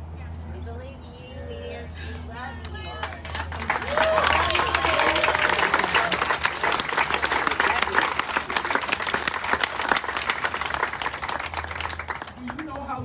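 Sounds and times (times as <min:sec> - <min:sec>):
crowd applauding: 0:02.9 - 0:12.9.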